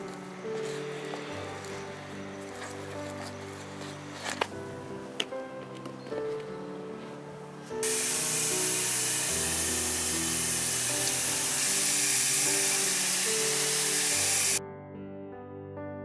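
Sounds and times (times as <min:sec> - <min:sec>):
water spraying onto soil and leaves: 0:07.8 - 0:14.6.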